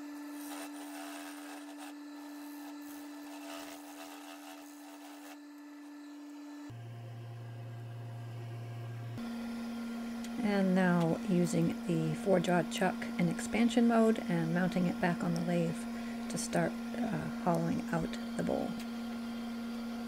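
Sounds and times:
gouge cutting wood: 0.0s - 5.4s
wood lathe humming: 0.0s - 20.0s.

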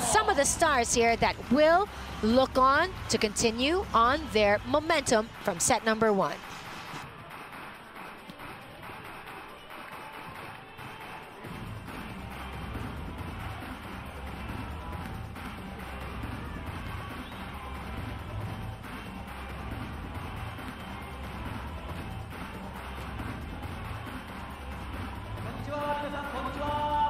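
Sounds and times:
pulsing low drumbeat music: 0.0s - 7.6s, 10.8s - 27.0s
arena crowd noise: 0.0s - 27.0s.

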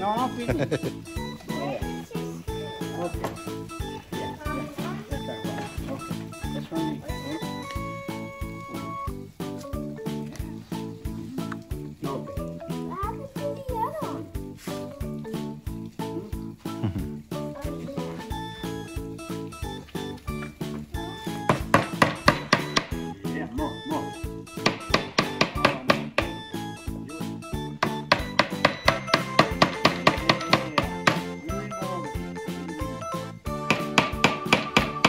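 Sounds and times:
background music: 0.0s - 35.0s
light hammer taps on wood: 24.6s - 26.4s, 27.8s - 31.3s.

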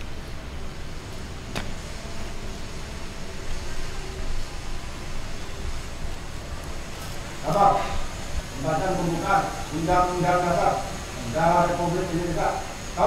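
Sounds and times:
low outdoor rumble: 0.0s - 13.0s.

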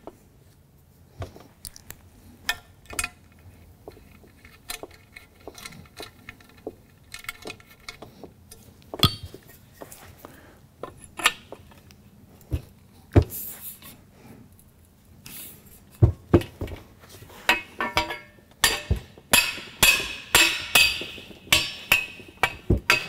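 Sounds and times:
small metallic clicks and clinks: 1.6s - 9.4s
sharp metal knocks: 9.0s - 9.4s, 17.5s - 23.0s.

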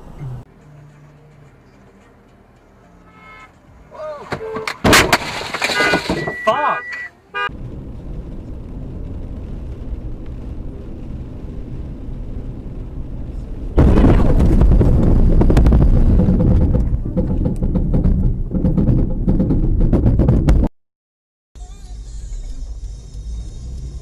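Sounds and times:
tyres and rain rumble: 7.5s - 20.2s
loud rough rumble: 7.5s - 20.7s.

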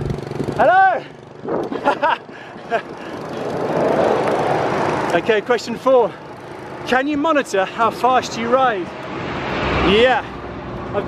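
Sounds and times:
small motorbike passing: 0.0s - 11.0s.

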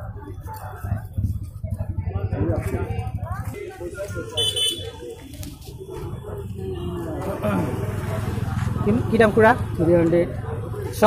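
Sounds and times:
market crowd voices: 0.0s - 11.0s.

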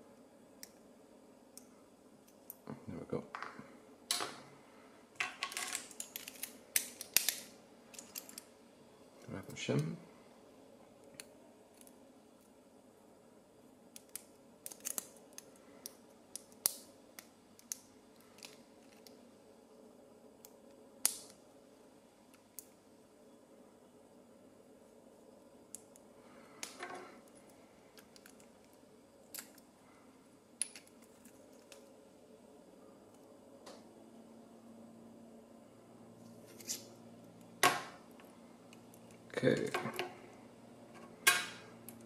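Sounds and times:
metal tool scrape: 36.4s - 36.9s.

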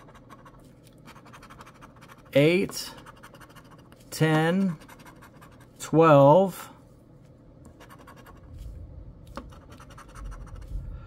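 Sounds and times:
coin scratching lottery ticket: 0.0s - 5.7s, 7.8s - 8.5s, 9.4s - 10.7s.

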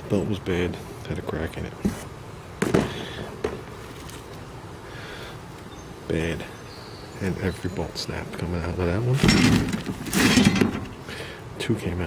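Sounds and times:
metal parts knocking in a box: 9.2s - 11.0s.

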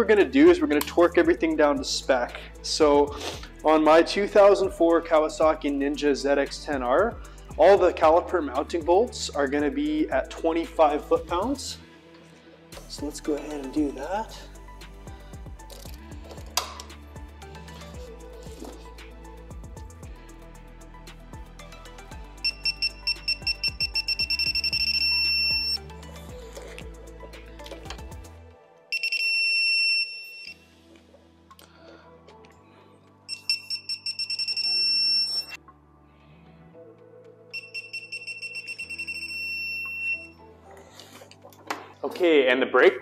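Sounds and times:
background music: 0.0s - 43.0s
torque wrench beeping: 22.4s - 25.8s, 28.9s - 30.6s, 33.3s - 35.6s, 37.6s - 40.4s.

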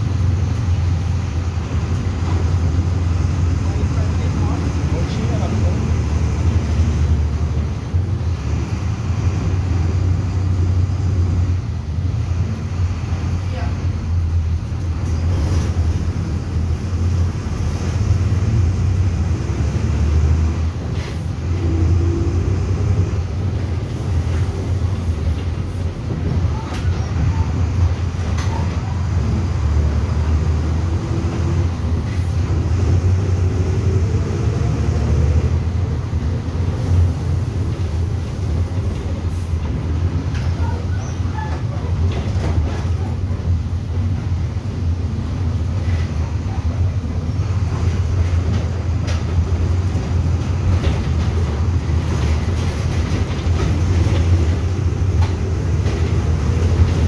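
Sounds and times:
bus diesel engine: 0.0s - 57.0s.

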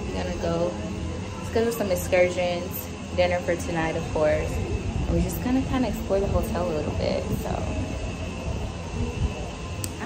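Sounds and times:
faint steady high hum: 0.0s - 10.0s
wind on microphone: 0.0s - 10.0s.

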